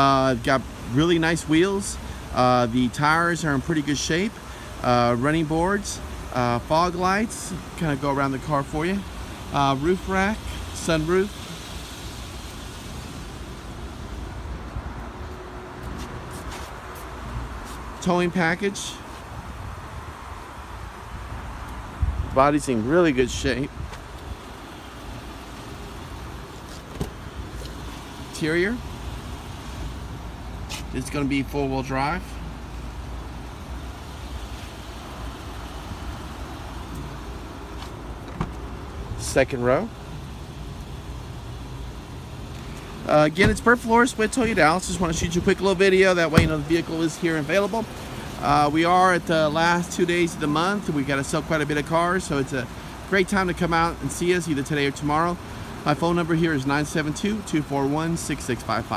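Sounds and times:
traffic rumble: 0.0s - 58.9s
wind on the microphone: 21.3s - 22.6s.

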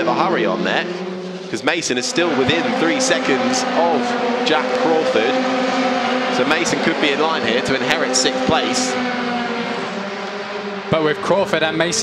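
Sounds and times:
race car engine at high revs: 0.0s - 12.0s.

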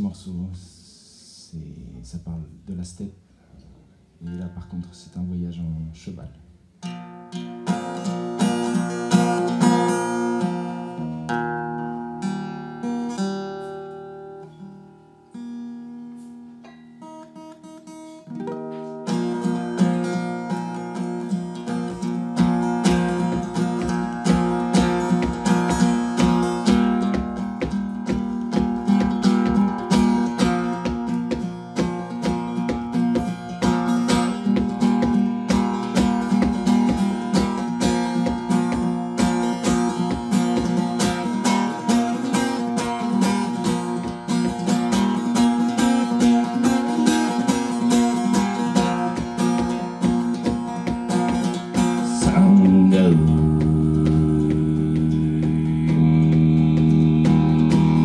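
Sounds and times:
acoustic guitar playing: 3.8s - 58.0s.

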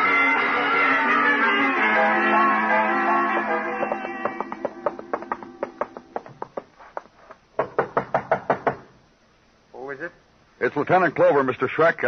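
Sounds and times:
plucked guitar music: 0.0s - 5.8s
knocking on a door: 3.8s - 6.7s, 7.6s - 8.9s.

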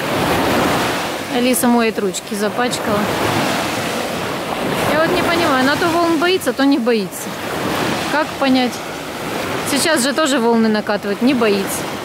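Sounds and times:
sea waves breaking on beach: 0.0s - 12.0s.

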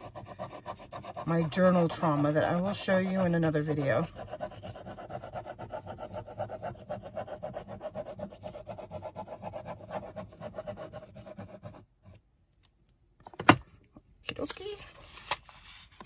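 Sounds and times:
glue nozzle scraping cardboard: 0.0s - 11.8s.

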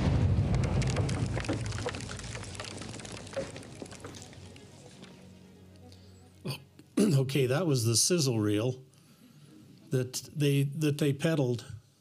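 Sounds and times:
explosion rumble: 0.0s - 4.7s
falling rock debris: 0.0s - 5.2s.

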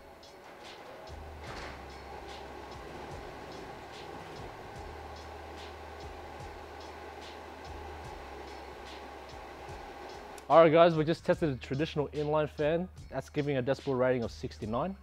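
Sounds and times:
duct fan humming: 0.0s - 11.0s.

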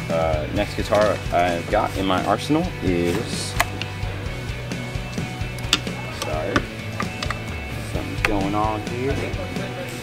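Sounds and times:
low background music: 0.0s - 10.0s
guitar knocking against rack: 5.6s - 7.5s.

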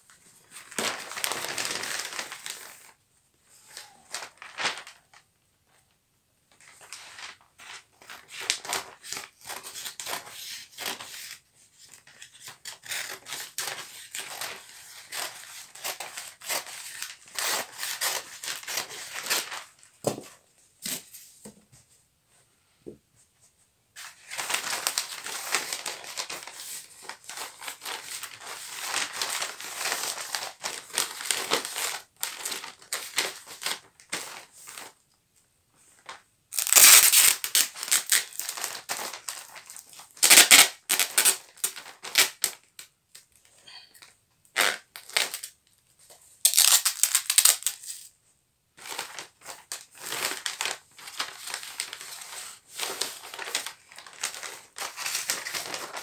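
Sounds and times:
wrapping paper crinkling: 0.3s - 3.0s, 3.6s - 5.2s, 6.6s - 20.0s, 24.0s - 35.0s, 36.0s - 43.4s, 46.4s - 48.1s, 48.8s - 56.0s
loud ripping rasps: 36.5s - 38.6s.

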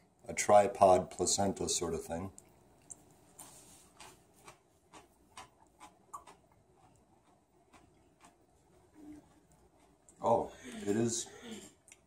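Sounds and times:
mouth clicks of chewing: 2.3s - 3.1s, 4.0s - 10.2s.

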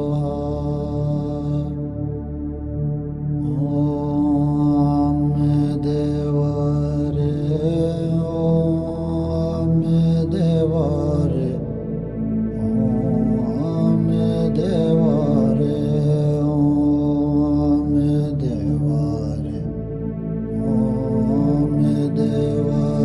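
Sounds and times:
chanted mantra singing: 0.0s - 23.0s
steady low drone: 0.0s - 23.0s.

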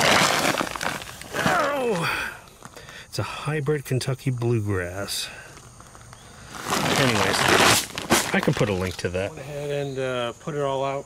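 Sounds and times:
man's falling vocal sound: 1.3s - 2.4s.

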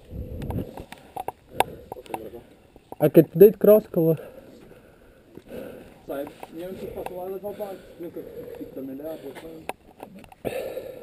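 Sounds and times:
men talking: 1.8s - 4.8s, 5.4s - 9.8s.

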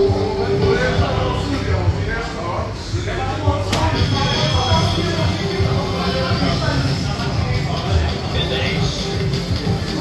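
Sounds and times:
arcade background music: 0.0s - 10.0s.

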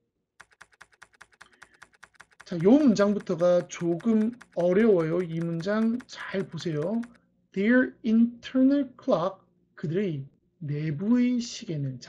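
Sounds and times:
rapid keyboard typing: 0.4s - 7.2s.

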